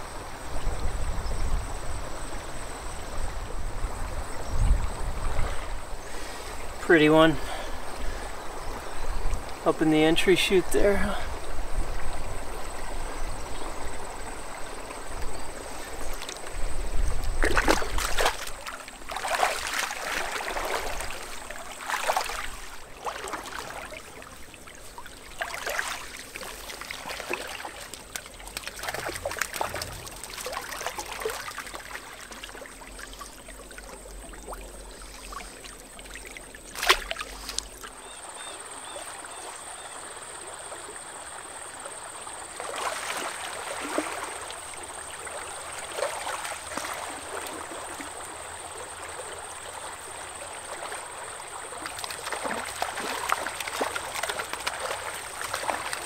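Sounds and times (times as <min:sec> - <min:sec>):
stream running over riffles: 0:00.0 - 0:56.0
water splashes: 0:05.2 - 0:56.0.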